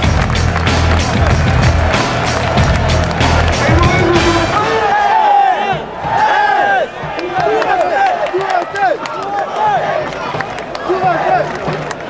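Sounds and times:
loud music over loudspeakers: 0.0s - 5.0s.

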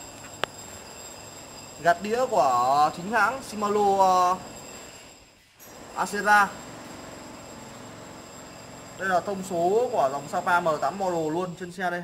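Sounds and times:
faint high whine: 0.0s - 11.6s.

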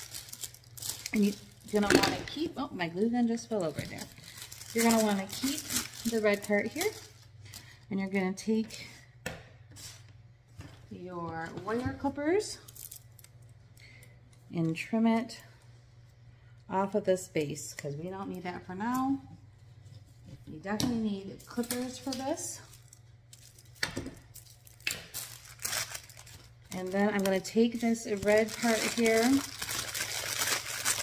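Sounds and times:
plastic and foil rustling: 0.0s - 8.2s, 12.5s - 13.4s, 21.4s - 31.0s
steady low hum: 0.0s - 30.5s.

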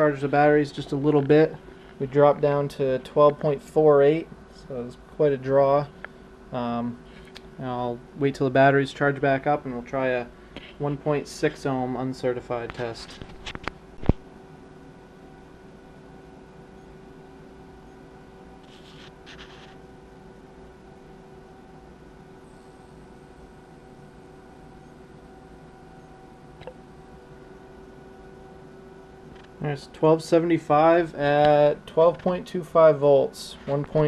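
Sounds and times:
steady electrical hum: 0.0s - 34.0s.

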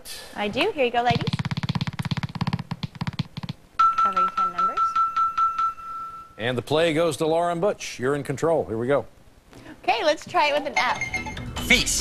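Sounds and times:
fast run of clicks: 1.2s - 3.6s.

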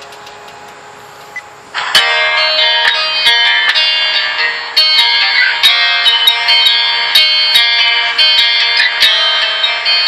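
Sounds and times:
low steady hiss: 0.0s - 3.2s
song with guitar from small speaker: 0.0s - 10.0s.

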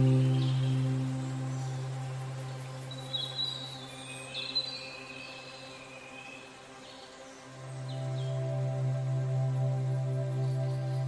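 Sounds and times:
calm ambient music: 0.0s - 11.0s.

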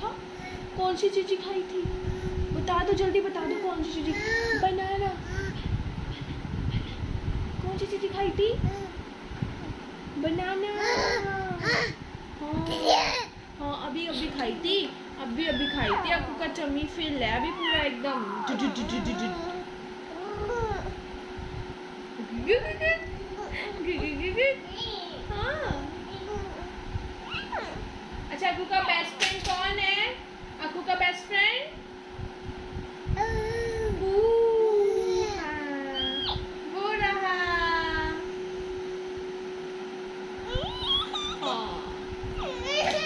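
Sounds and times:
faint hum: 0.0s - 43.0s
toddler whiny cry: 4.1s - 4.7s, 10.8s - 12.0s, 33.2s - 34.0s, 34.6s - 36.2s, 40.4s - 41.5s, 42.4s - 43.0s.

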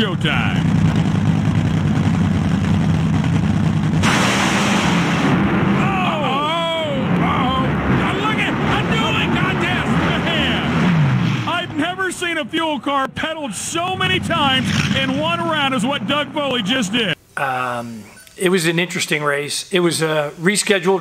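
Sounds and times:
dragster engines roaring: 0.0s - 17.2s.

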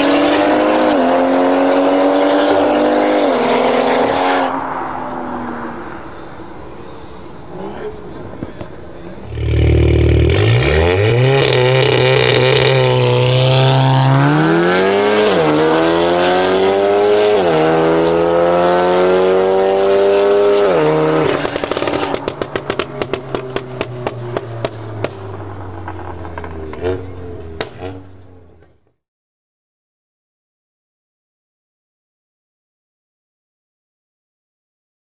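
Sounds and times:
car engine revving through gears: 0.0s - 6.2s, 9.1s - 28.7s
exhaust crackles and pops: 8.3s - 14.0s, 21.2s - 28.8s.

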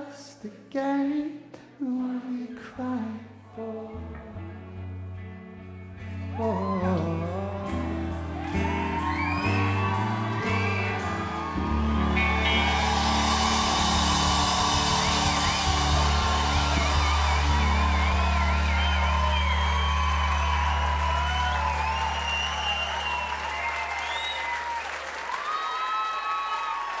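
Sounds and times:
crowd cheering and applauding: 6.3s - 27.0s
rock band chord ringing: 8.6s - 23.3s.

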